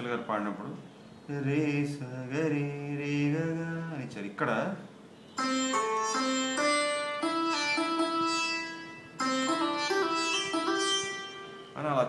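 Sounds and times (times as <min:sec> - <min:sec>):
sitar-sound keyboard melody: 0:05.2 - 0:12.0.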